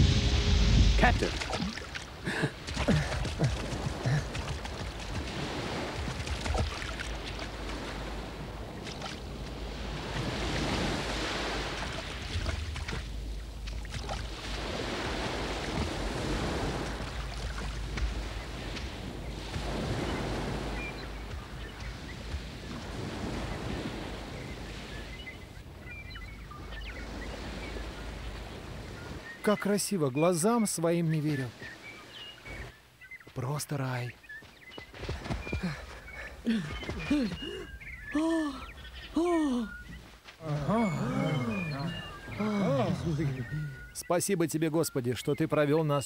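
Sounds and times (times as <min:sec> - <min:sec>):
waves washing onto beach: 0:00.0 - 0:44.2.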